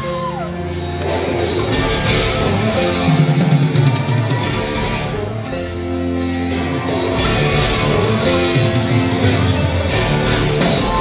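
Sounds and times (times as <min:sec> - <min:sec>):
drums: 0:00.0 - 0:11.0
electric guitars: 0:00.0 - 0:11.0
heavy low notes: 0:00.0 - 0:11.0
keyboards: 0:00.0 - 0:11.0.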